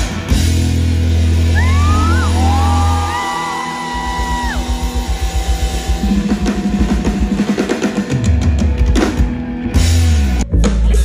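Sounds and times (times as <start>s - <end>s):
steady drum beat: 0.0s - 10.4s
live pop-rock band: 0.0s - 11.0s.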